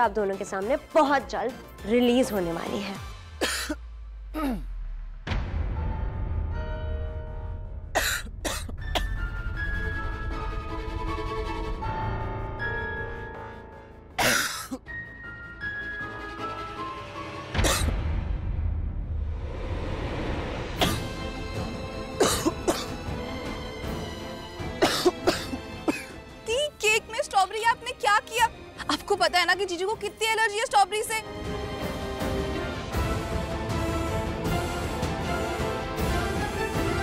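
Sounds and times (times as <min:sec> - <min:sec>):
background music: 0:00.0 - 0:37.0
man coughing: 0:03.4 - 0:04.8, 0:08.0 - 0:09.1, 0:14.2 - 0:14.8, 0:17.6 - 0:17.9, 0:20.8 - 0:21.1, 0:22.2 - 0:23.0, 0:24.8 - 0:26.2.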